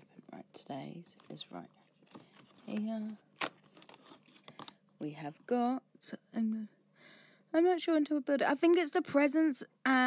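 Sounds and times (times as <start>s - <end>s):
cardboard crinkling and clicks: 2.0s - 4.7s.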